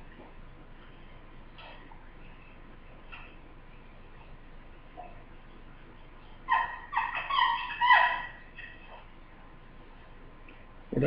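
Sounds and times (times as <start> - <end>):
bird calling: 6.3 - 9.2.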